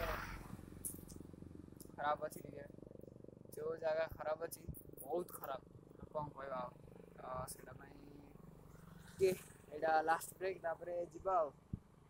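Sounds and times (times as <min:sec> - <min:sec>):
man speaking: 0:00.0 - 0:00.4, 0:01.9 - 0:02.7, 0:03.6 - 0:08.3, 0:09.2 - 0:11.5.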